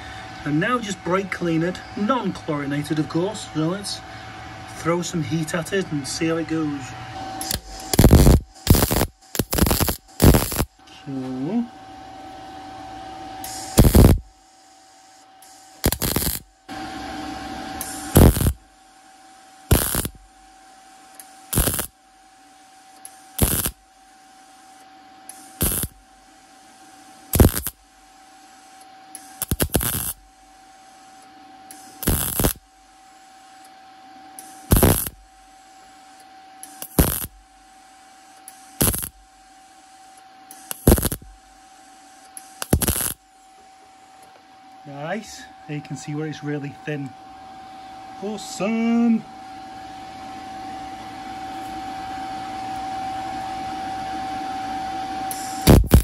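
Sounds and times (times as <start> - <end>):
faint steady hum: 0.0 - 56.0
welder arc crackle: 7.4 - 10.8, 13.4 - 16.6, 17.8 - 18.7, 19.7 - 20.3, 21.2 - 22.0, 23.0 - 23.9, 25.3 - 26.0, 27.3 - 30.3, 31.0 - 32.8, 34.4 - 35.4, 36.6 - 39.9, 40.5 - 43.2, 55.3 - 56.0.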